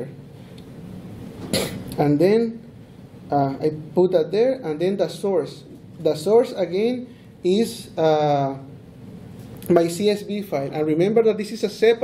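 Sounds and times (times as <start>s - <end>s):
person coughing: 1.4s - 1.9s.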